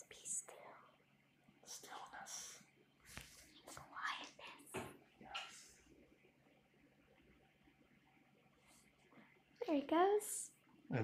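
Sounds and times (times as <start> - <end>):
person whispering: 0.0 - 0.8, 1.7 - 2.6, 3.6 - 5.7.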